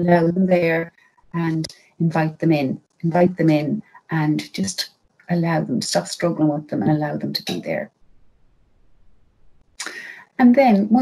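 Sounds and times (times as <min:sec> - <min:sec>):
woman speaking: 0:00.0 - 0:07.9, 0:09.8 - 0:11.0
noisy intake of breath: 0:09.8 - 0:10.3.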